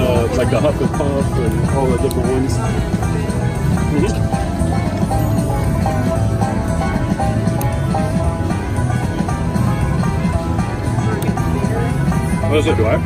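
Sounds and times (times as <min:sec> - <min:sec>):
slot machine bonus music: 0:00.0 - 0:13.0.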